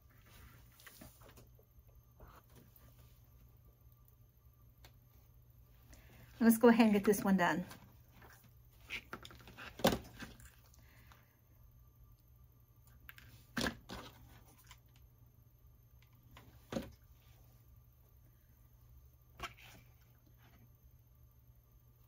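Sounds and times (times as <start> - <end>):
low steady room hum: 0.0 - 22.0.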